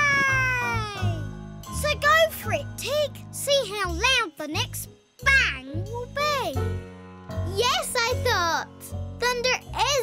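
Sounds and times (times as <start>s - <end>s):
young child cheering: 0.0s - 1.4s
soft background music: 0.0s - 10.0s.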